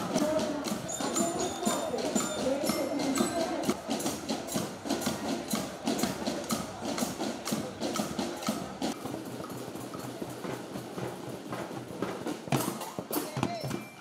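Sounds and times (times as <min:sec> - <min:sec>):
marching band percussion clicking: 0:00.0 - 0:14.0.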